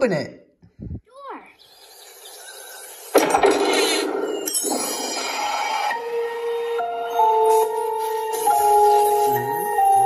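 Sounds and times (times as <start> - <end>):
shimmering chime-like tones: 3.7 - 8.4.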